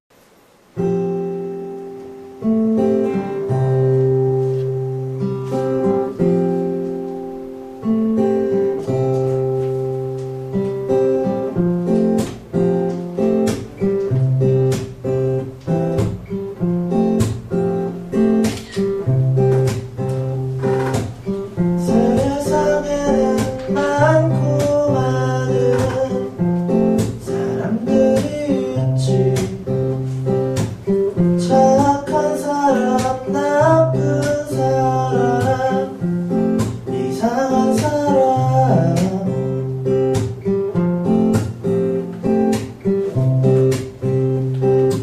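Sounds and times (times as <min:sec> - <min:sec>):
acoustic guitar playing: 0:00.2 - 0:45.0
person singing: 0:21.6 - 0:30.2, 0:31.2 - 0:39.7.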